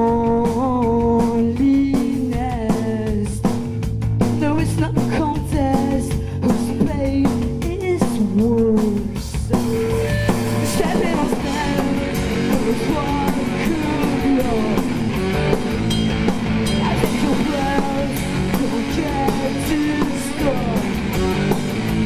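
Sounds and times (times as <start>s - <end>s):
bass guitar: 0.0s - 22.0s
drum kit: 0.0s - 22.0s
electric guitar: 0.0s - 22.0s.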